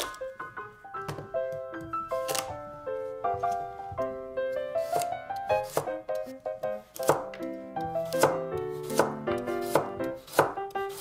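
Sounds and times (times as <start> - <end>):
background music: 0.0 - 11.0
knife cutting on wooden board: 2.2 - 2.5, 4.8 - 6.3, 6.9 - 7.3, 7.9 - 11.0.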